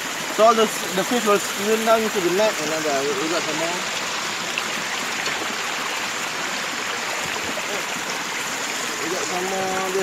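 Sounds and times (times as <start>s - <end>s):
creek water running: 0.0s - 10.0s.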